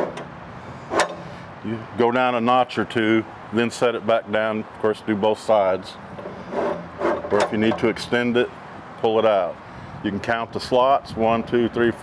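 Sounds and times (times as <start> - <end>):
metal clicks of step leg: 0.0 - 0.3, 0.9 - 1.3, 6.1 - 7.9.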